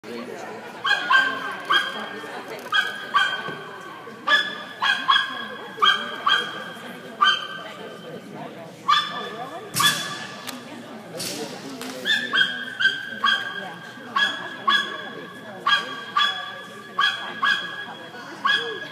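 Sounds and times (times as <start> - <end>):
dog barking: 0.8 - 2.0, 2.7 - 3.6, 4.3 - 7.6, 8.9 - 10.1, 12.1 - 13.6, 14.2 - 18.9.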